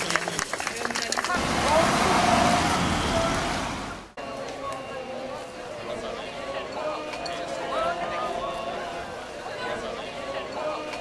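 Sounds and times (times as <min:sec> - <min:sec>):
car driving past: 0:01.4 - 0:04.2.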